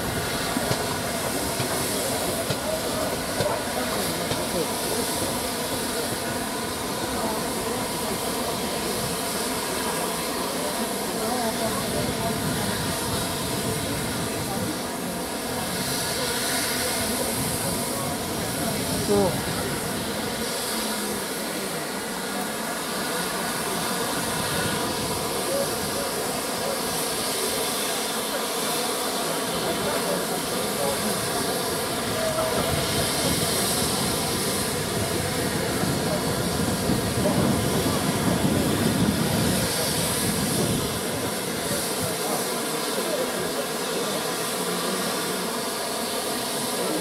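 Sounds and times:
crowd chattering: 0:00.0 - 0:47.0
steam locomotive hissing: 0:00.0 - 0:47.0.

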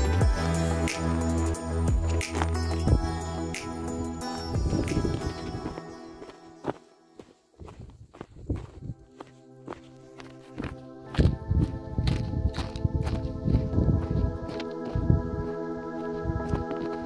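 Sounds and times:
background music sustained tones: 0:00.0 - 0:07.5, 0:08.8 - 0:17.0
footsteps in snow: 0:04.7 - 0:17.0.

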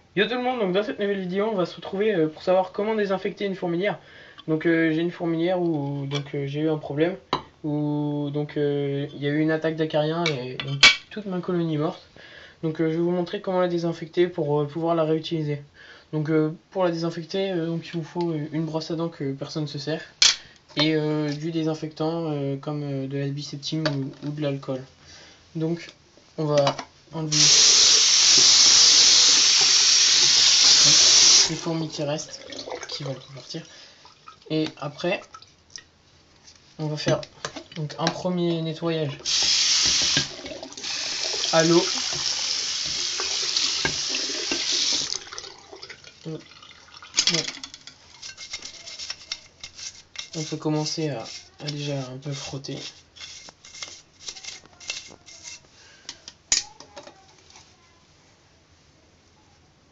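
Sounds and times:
tap water running into sink: 0:27.3 - 0:33.5, 0:39.2 - 0:47.7
toothbrush scrubbing: 0:48.1 - 0:55.7.

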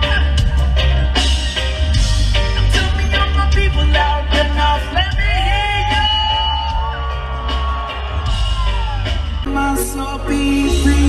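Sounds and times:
drums: 0:00.0 - 0:11.0
guitar: 0:00.0 - 0:11.0
heavy bass: 0:00.0 - 0:11.0.

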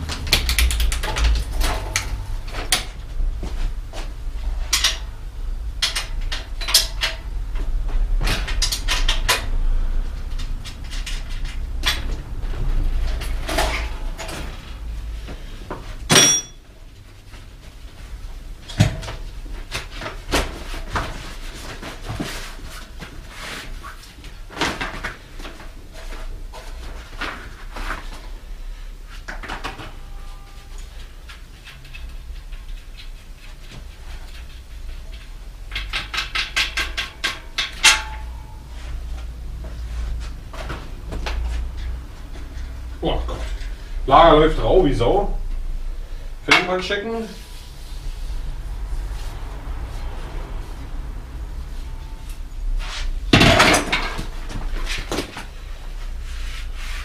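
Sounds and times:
low steady hum: 0:00.0 - 0:21.8
metal parts and tools rattling: 0:04.6 - 0:05.2, 0:05.8 - 0:07.3, 0:08.2 - 0:09.6, 0:16.1 - 0:16.6, 0:30.7 - 0:38.8
sharp metallic click and ring: 0:16.1 - 0:16.6.

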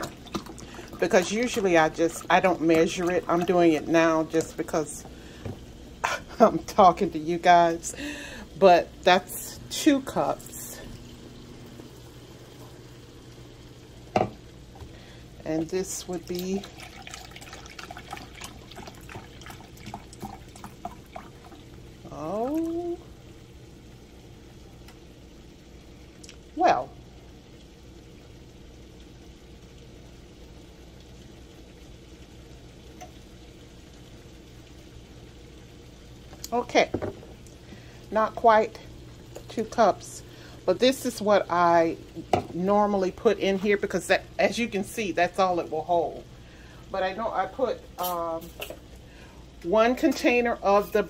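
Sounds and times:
broth pouring into pot: 0:00.0 - 0:49.7
low steady hum: 0:00.0 - 0:51.0.

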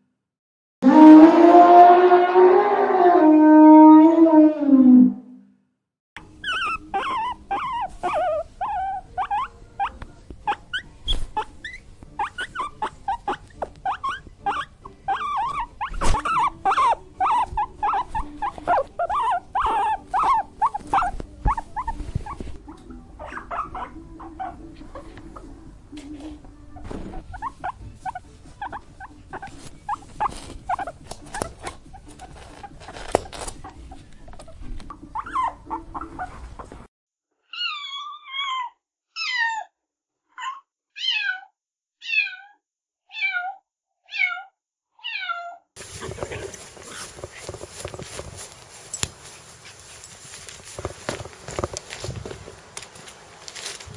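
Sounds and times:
high chirps and squeaks: 0:10.5 - 0:22.4.

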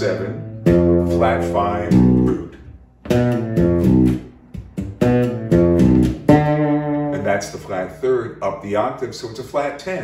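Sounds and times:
fretless bass plucked notes: 0:00.0 - 0:08.6.

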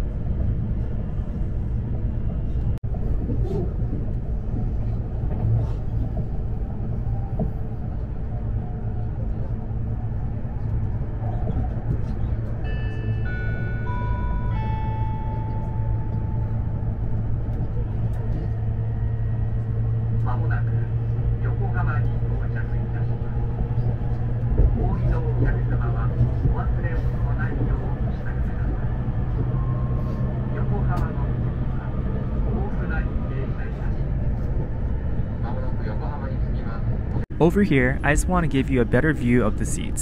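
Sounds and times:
electric train rumble: 0:00.0 - 0:40.0.

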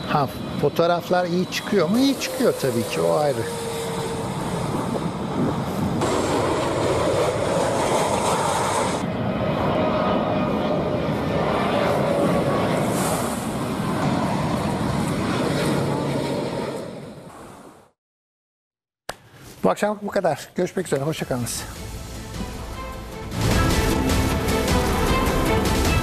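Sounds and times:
jet airliners flying overhead: 0:00.0 - 0:18.0.

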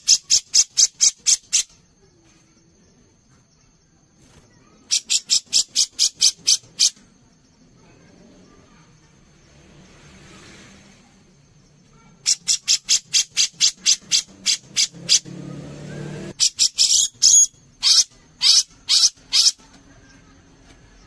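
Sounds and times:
bird calling: 0:11.9 - 0:20.3.

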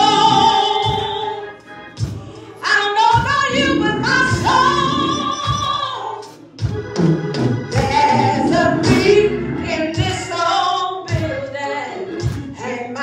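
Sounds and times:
woman singing gospel song: 0:00.0 - 0:06.9, 0:07.6 - 0:13.0.

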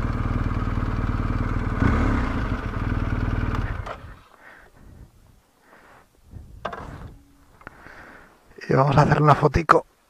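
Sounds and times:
motorcycle engine at low revs: 0:00.0 - 0:05.1.

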